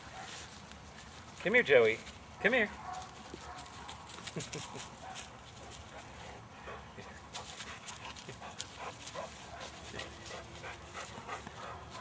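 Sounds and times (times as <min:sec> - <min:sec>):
rustles and clicks on grass: 0:00.0 - 0:12.0.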